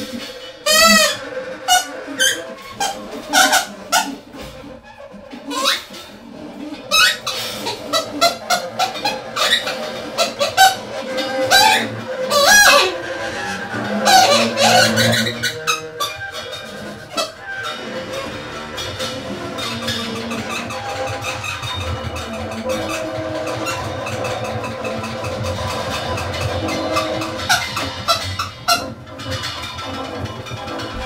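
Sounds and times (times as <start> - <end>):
sliding saxophone notes: 6.6 - 29.0, 30.8 - 31.0.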